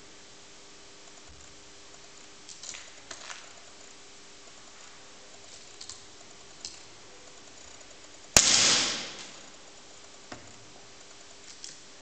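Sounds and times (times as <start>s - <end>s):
pistol shot with echo: 8.4s - 9.5s.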